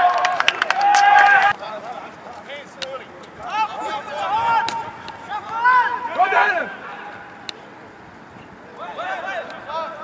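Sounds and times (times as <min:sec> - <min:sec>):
voices shouting: 0:00.0 - 0:07.4.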